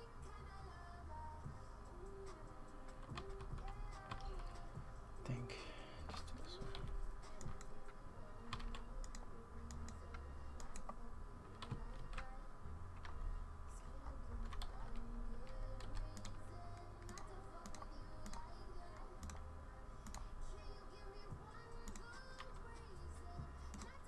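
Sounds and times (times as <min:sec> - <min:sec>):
low steady hum: 0:00.0 - 0:24.0
keyboard keys clicking: 0:02.2 - 0:05.4, 0:06.0 - 0:12.4, 0:14.3 - 0:20.4, 0:21.3 - 0:23.0, 0:23.7 - 0:24.0.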